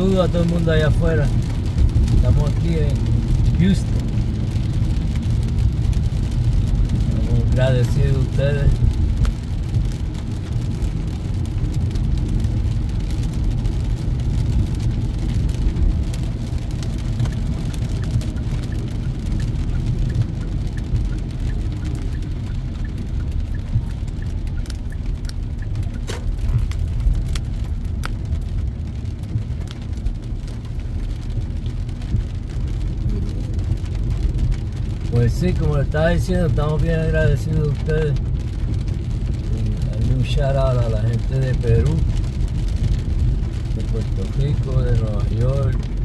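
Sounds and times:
rain ticking on windshield: 0:00.0 - 0:46.0
road and engine rumble: 0:00.0 - 0:46.0.

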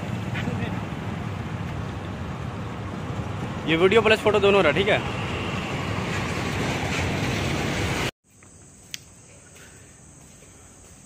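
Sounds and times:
crickets chirring: 0:08.2 - 0:11.0.

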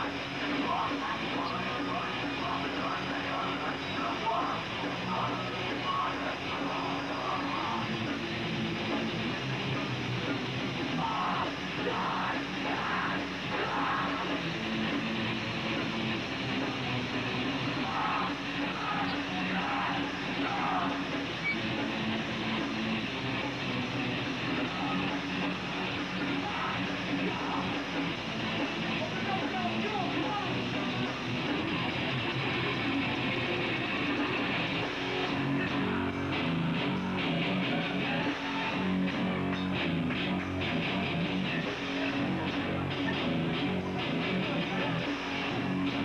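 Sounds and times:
punk band playing live: 0:00.0 - 0:46.0.

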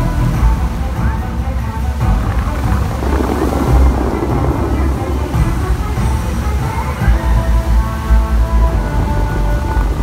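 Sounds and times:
deep low rumble: 0:00.0 - 0:10.0
fountain water jets spraying: 0:00.0 - 0:10.0
music playing: 0:00.0 - 0:10.0.

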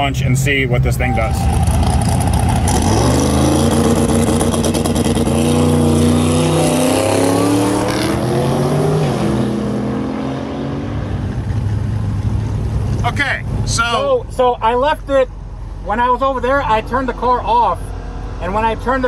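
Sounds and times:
car engine revving: 0:01.0 - 0:13.8.

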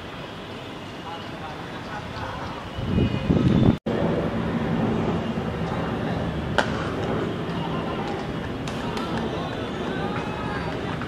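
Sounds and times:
faint distant voices: 0:04.6 - 0:11.0.

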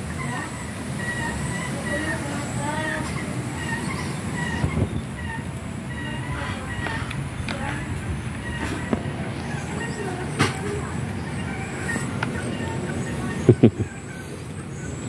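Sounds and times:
kittens high-pitched calls: 0:00.0 - 0:15.0
low rumble: 0:03.2 - 0:14.0.

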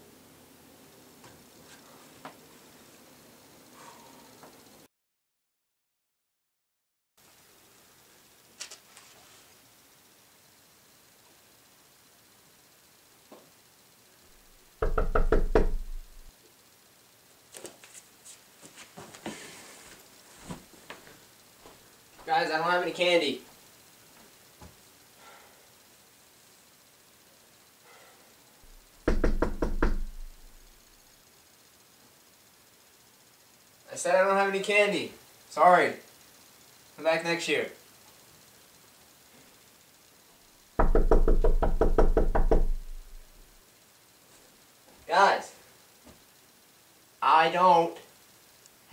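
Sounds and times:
loud knocks on a door: 0:14.8 - 0:16.3, 0:29.0 - 0:30.6, 0:40.8 - 0:43.3.

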